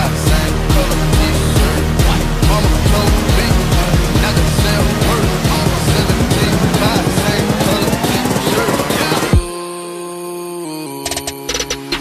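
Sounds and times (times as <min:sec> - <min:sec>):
rising sweep: 0:00.0 - 0:09.4
music with fast dense beat: 0:00.0 - 0:09.6, 0:11.1 - 0:12.0.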